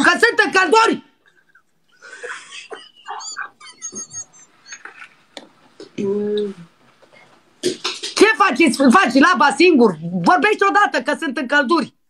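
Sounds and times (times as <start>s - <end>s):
woman squealing laughter: 2.0s - 4.8s.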